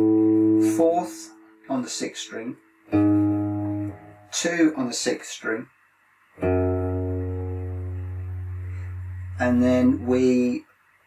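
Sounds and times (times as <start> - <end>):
electric guitar note ringing: 0.0 - 1.7, 2.9 - 4.4, 6.4 - 10.5.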